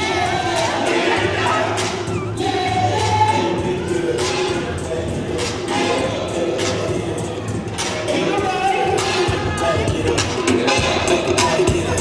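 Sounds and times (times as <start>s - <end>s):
dance music with heavy bass: 0.0s - 12.0s.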